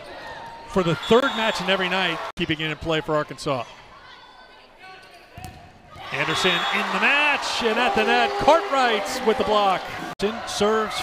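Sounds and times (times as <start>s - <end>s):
faint crowd and player voices: 0.0s - 11.0s.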